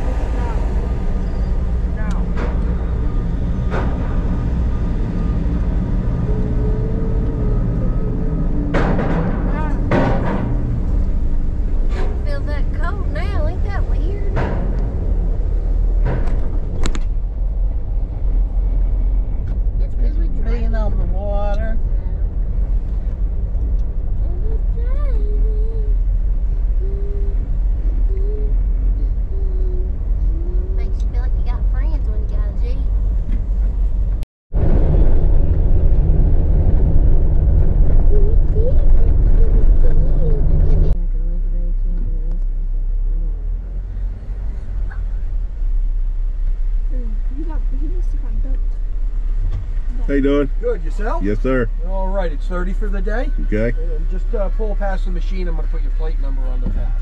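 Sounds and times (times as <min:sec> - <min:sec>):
engine and road rumble: 0:00.0 - 0:57.0.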